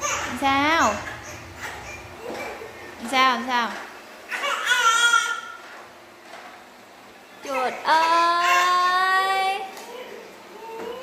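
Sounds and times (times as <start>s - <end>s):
baby crying: 0.0s - 2.9s, 4.3s - 5.6s, 7.4s - 11.0s.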